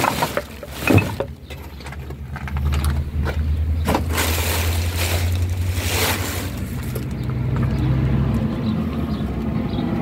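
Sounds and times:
plastic bags rustling: 0.0s - 3.0s, 3.8s - 7.2s.

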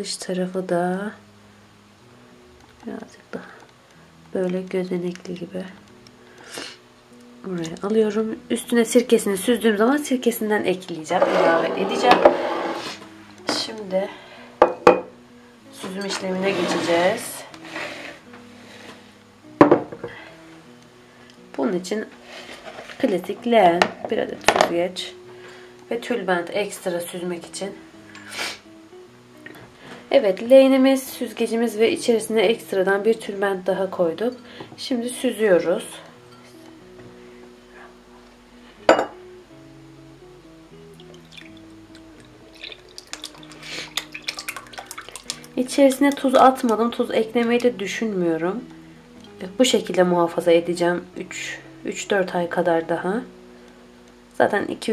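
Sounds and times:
faint background music: 0.0s - 54.9s
glass jar set down: 14.6s - 15.1s, 19.6s - 20.2s, 38.9s - 39.2s
liquid splashing and dripping: 40.9s - 46.8s.

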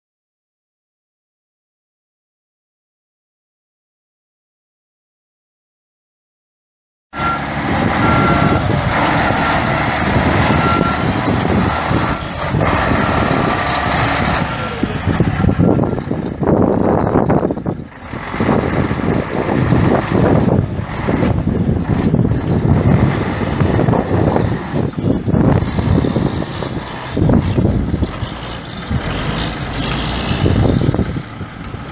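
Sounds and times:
diesel truck engine running: 7.2s - 31.9s.

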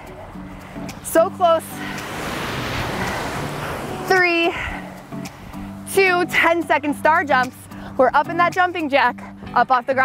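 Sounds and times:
wave breaking on sand: 1.9s - 4.1s.

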